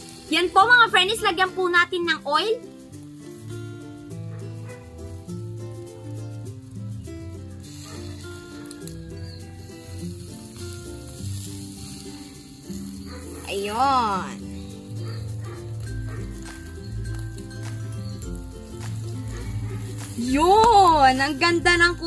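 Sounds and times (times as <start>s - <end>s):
background music with bass line: 0.0s - 22.0s
pork sizzling over charcoal: 0.0s - 22.0s.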